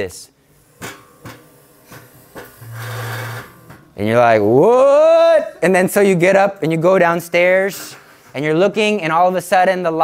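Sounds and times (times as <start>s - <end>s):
object scraping along a surface: 2.6s - 3.5s.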